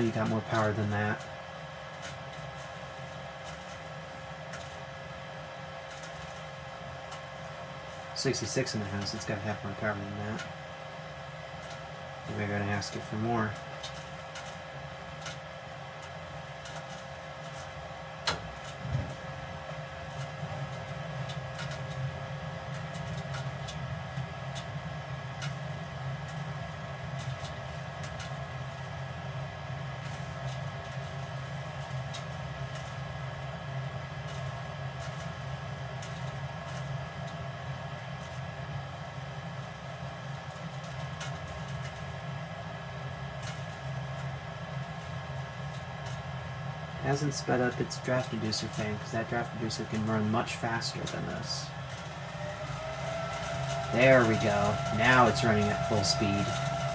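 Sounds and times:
furnace fan humming: 0.0s - 56.9s.

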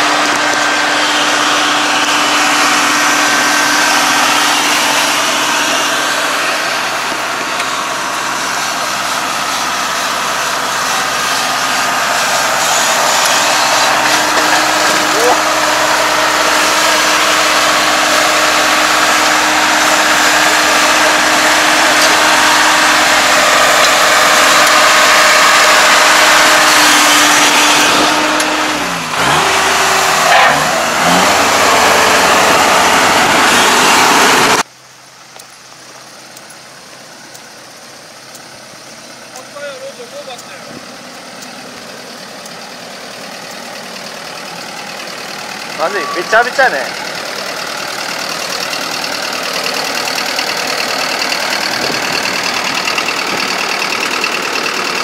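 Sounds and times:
combine harvester engine running: 0.0s - 55.0s.

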